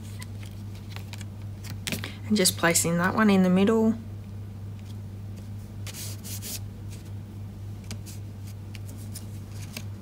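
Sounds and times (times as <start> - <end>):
hands rubbing on paper card: 5.8 - 7.1.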